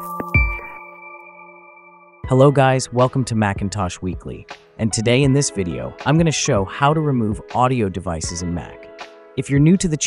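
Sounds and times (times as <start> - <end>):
held high synth chord: 0.0 - 2.3.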